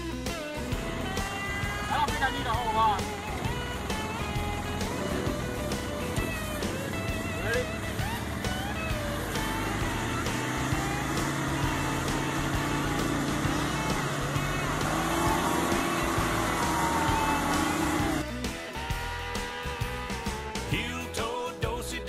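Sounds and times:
off-road vehicle engine in mud: 0.0s - 21.9s
country song: 0.0s - 22.0s.

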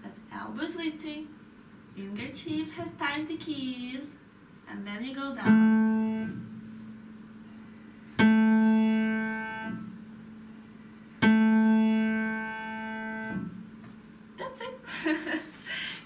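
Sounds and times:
low piano notes struck loudly: 5.4s - 6.6s, 8.2s - 10.4s, 11.2s - 13.7s.

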